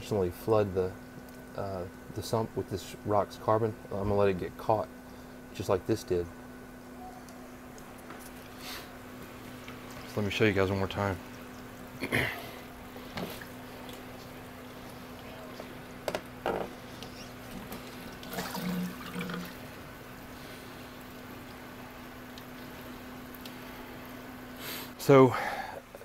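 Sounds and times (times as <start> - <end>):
steady low hum: 0.0 - 26.0
water splashing trickle: 9.4 - 16.0, 17.6 - 19.8.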